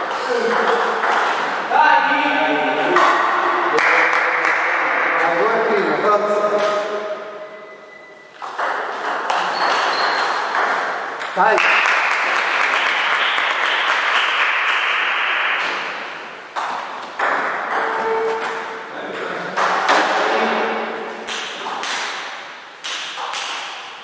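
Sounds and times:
table tennis ball hits: 0.1 - 1.6, 6.5 - 7.3, 8.4 - 24.0
mixed voices in a hall: 1.6 - 8.2.

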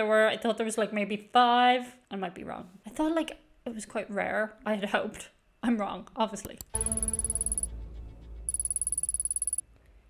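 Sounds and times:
fast electronic ticking: 6.8 - 7.7, 8.5 - 9.6.

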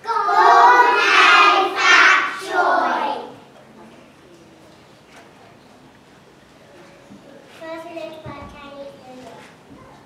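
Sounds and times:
children singing in unison: 0.0 - 3.4.

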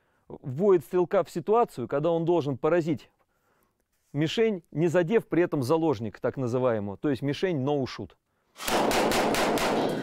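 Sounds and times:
automatic rifle fire: 8.6 - 10.0.

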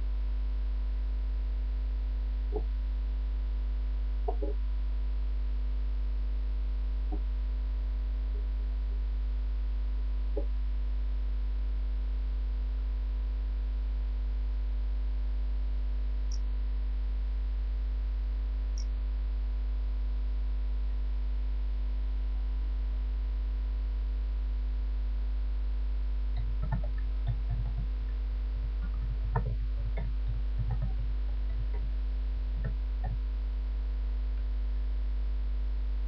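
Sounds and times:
electrical mains hum: 0.0 - 36.0
faint steady tones: 25.4 - 36.0
faint clicks: 26.4 - 33.3.

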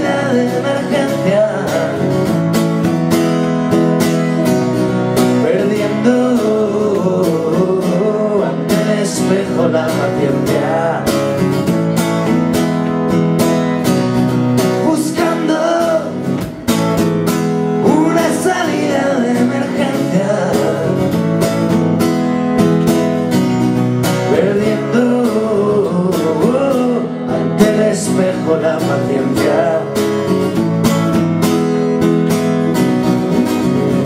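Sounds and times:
man singing: 0.0 - 2.4, 5.2 - 11.6, 14.6 - 16.6, 17.8 - 21.2, 24.1 - 30.5
acoustic guitar strumming: 0.0 - 34.0.

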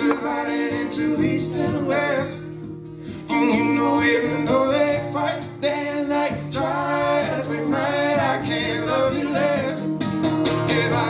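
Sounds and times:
man singing wordless melody: 0.0 - 2.6, 3.2 - 10.0
acoustic guitars strumming: 0.0 - 11.0.

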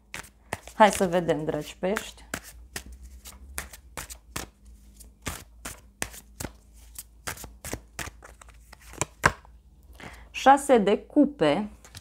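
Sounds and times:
cards shuffled by hand: 0.1 - 9.4.

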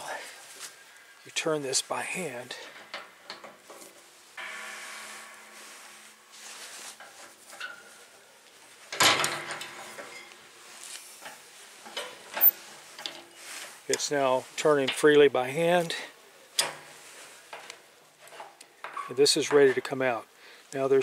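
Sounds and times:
metal creaking and scraping: 1.7 - 13.8.

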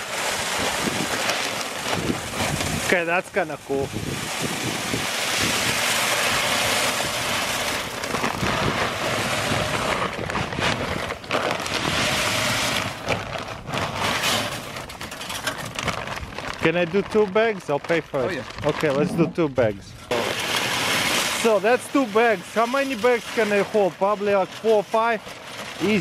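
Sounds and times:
salt pouring into hopper: 0.0 - 10.8, 11.4 - 13.2, 20.1 - 26.0
plastic bag crinkling: 0.0 - 26.0.

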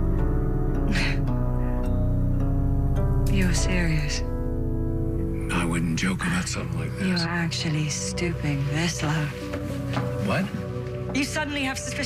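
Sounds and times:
low sustained score music: 0.0 - 12.0.

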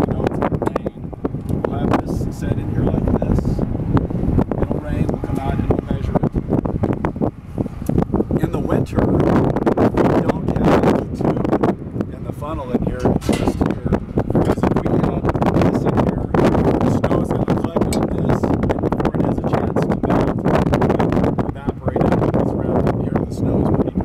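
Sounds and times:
man talking: 0.0 - 3.6, 4.6 - 6.4, 8.3 - 24.0
wind rumbling on microphone: 0.0 - 24.0.

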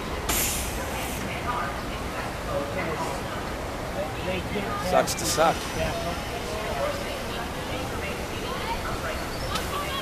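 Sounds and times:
faint voices: 0.0 - 10.0
sharp hiss: 0.3 - 1.2.

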